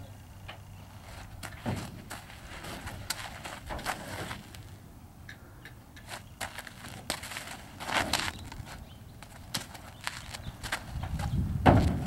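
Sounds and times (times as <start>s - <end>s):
horse hooves crunching on ground: 1.0s - 4.8s, 6.0s - 12.0s.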